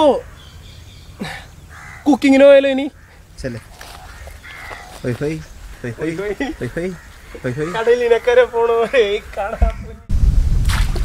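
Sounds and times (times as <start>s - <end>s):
crow cawing: 1.2s - 9.9s.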